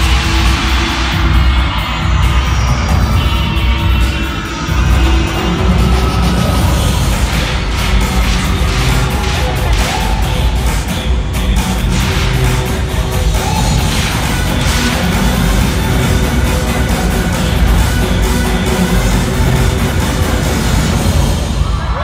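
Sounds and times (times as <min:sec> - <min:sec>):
heavy bass beat: 0:00.0 - 0:21.9
loud concert music: 0:00.0 - 0:22.0.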